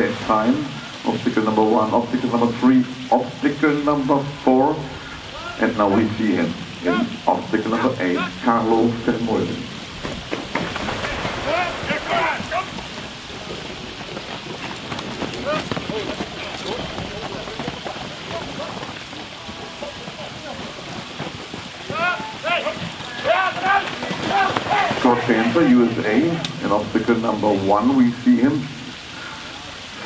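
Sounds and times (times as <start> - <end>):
hooves and wheels splashing water: 0.0 - 30.0
steady rushing haze: 0.0 - 30.0
short shouted calls: 5.2 - 5.6, 6.8 - 8.5, 11.0 - 12.8, 21.9 - 26.6.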